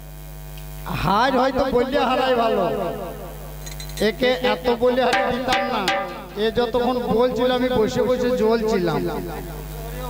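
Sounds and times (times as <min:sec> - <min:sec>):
electrical mains hum: 0:00.0 - 0:10.0
man's voice over microphone: 0:00.9 - 0:03.3, 0:04.0 - 0:10.0.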